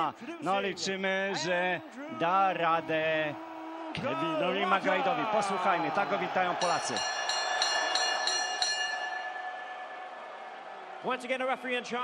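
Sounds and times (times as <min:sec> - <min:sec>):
boxing ring bell strikes: 0:06.6 - 0:10.0.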